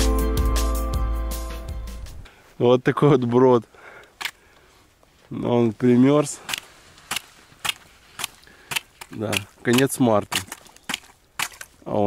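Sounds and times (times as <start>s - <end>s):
trekking pole tapping ice: 6.4s - 11.8s.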